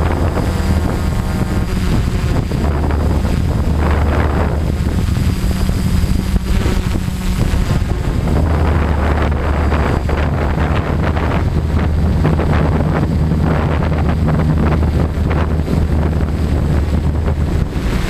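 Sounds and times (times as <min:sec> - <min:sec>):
drone motors and propellers: 0:00.0 - 0:18.0
wind buffeting microphone: 0:00.0 - 0:18.0.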